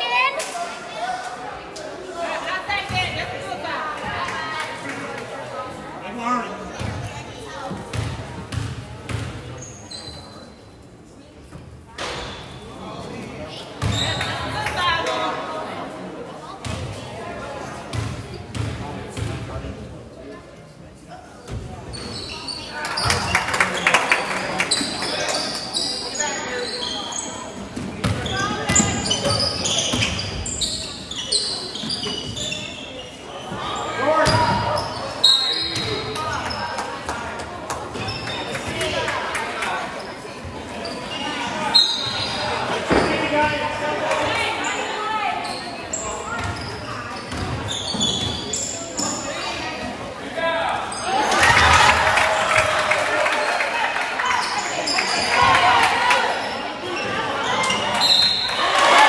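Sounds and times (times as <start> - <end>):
crowd shouting and cheering: 50.3 - 59.0.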